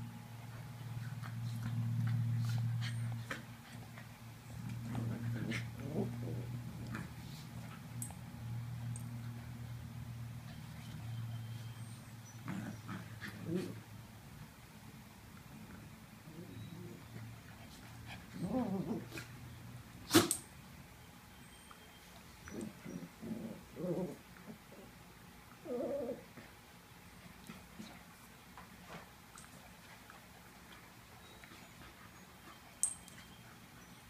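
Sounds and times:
steady low hum: 0.0 - 34.0
dogs play-growling: 0.4 - 14.6, 15.2 - 20.5, 22.3 - 34.0
dogs growling: 4.5 - 7.6, 12.4 - 13.9, 15.6 - 17.2, 18.1 - 19.4, 22.4 - 24.9, 25.6 - 26.4.

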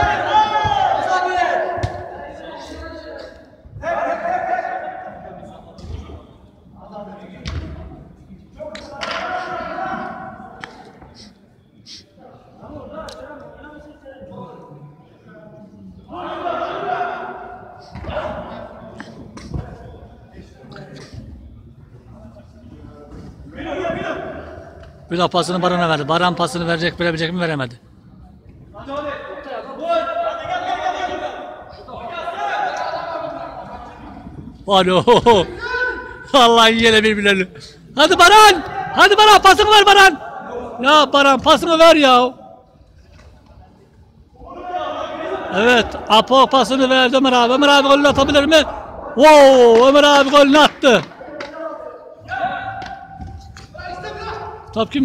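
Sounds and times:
footballers shouting: 0.0 - 5.5, 16.0 - 18.8, 23.5 - 24.8, 28.8 - 37.4, 38.0 - 42.4, 44.4 - 55.0.

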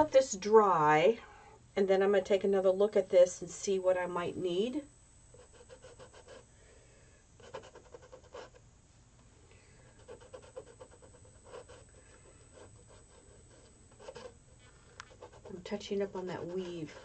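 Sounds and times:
fingers rubbing paint on canvas: 15.0 - 17.0.

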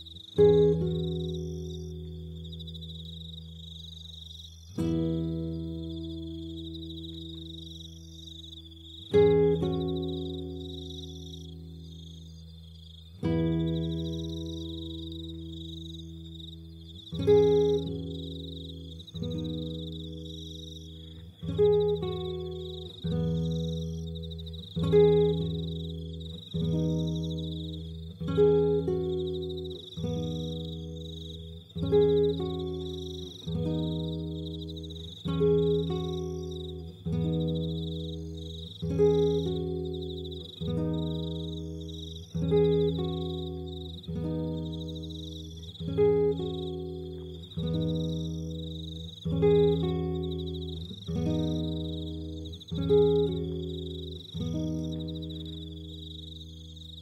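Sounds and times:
acoustic guitar plucked chords: 0.0 - 57.0
high cricket chirping: 0.0 - 57.0.

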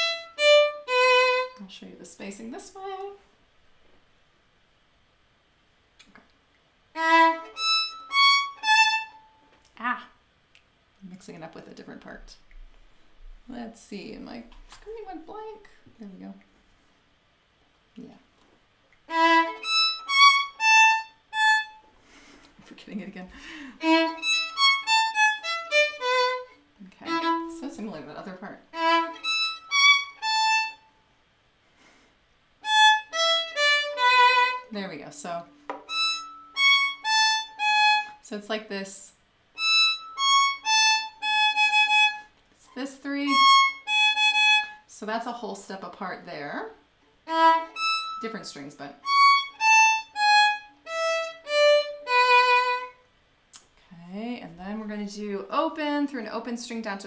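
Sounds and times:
solo violin bowed notes: 0.0 - 1.6, 7.0 - 9.4, 19.1 - 21.8, 23.5 - 30.9, 32.6 - 34.7, 35.7 - 38.2, 39.6 - 42.3, 43.2 - 44.8, 47.2 - 48.4, 49.0 - 53.0.

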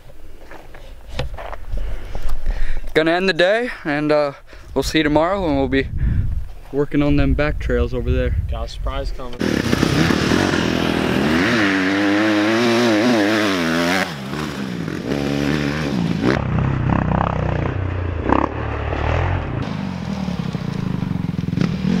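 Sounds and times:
dirt bike engines revving: 9.2 - 22.0.

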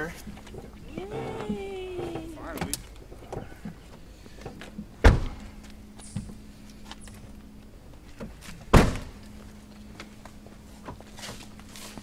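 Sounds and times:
drawn-out voice: 0.9 - 2.7
knocks and clicks of car door: 5.0 - 5.5.

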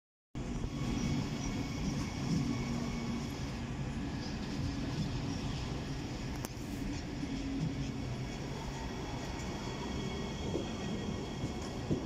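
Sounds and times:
train wheels rumbling: 0.4 - 12.0.

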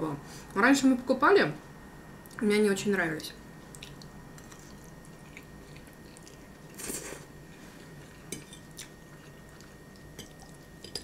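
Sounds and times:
chewing spaghetti: 3.7 - 11.0.

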